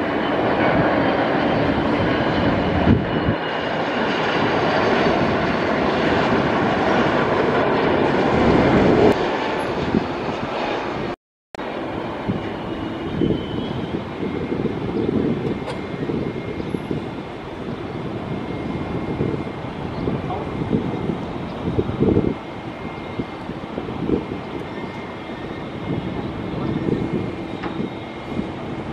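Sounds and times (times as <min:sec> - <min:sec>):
distant jet rumble: 0:00.0 - 0:28.9.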